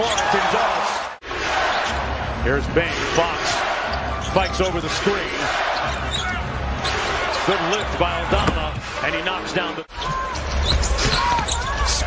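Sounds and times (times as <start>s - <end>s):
shoe squeaks: 5.7s - 7.9s, 9.9s - 12.0s.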